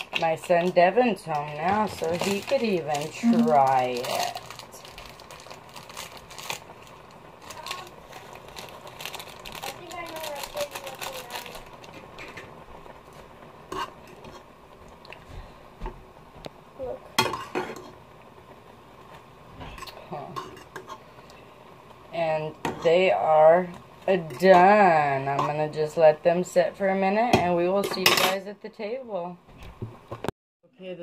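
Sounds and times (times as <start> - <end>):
utensil scraping cooking pot: 13.7 - 14.5, 19.7 - 21.2, 24.1 - 25.6.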